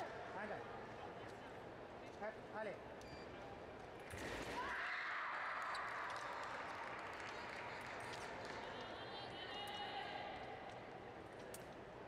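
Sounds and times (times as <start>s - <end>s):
wash of voices in a hall: 4.5s - 11.2s.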